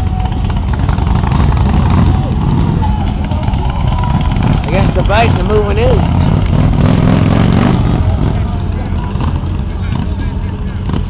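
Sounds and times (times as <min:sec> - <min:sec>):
motorcycle engines rumbling: 0:00.0 - 0:11.0.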